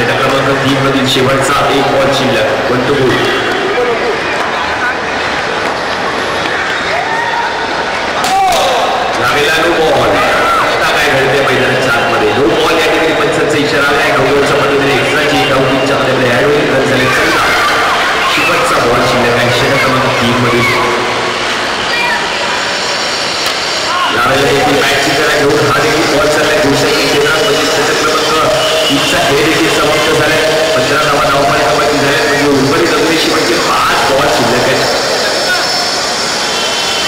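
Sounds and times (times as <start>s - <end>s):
crowd chatter and shouting: 0.0s - 37.0s
distant voices: 0.0s - 37.0s.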